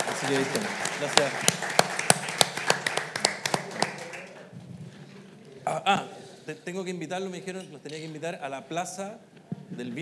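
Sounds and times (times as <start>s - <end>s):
sharp close claps: 0.0s - 4.3s
audience applause: 0.0s - 4.5s.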